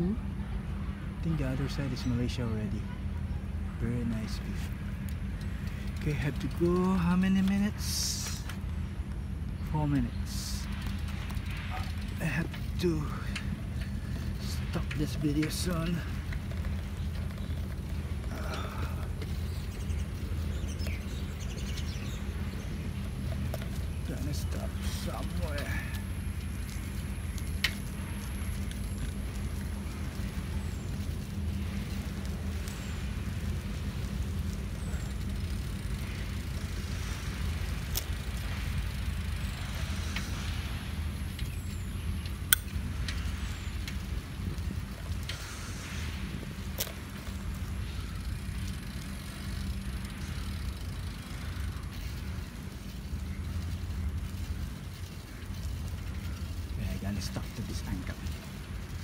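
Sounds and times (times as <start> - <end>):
bicycle tyres rolling on pavement: 0.0 - 59.0.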